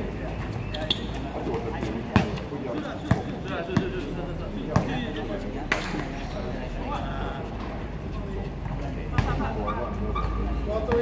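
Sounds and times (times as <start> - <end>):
basketball bouncing on hard court: 3.0 - 3.9.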